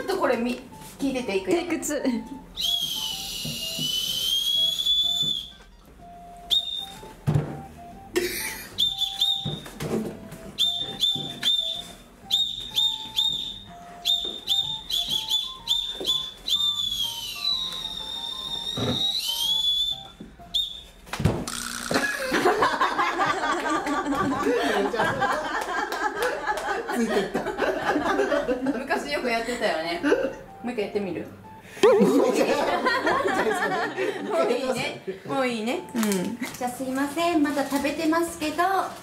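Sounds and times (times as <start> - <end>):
candy whistle blown shrilly: 2.6 - 5.6, 6.5 - 7.0, 8.8 - 9.7, 10.6 - 20.9.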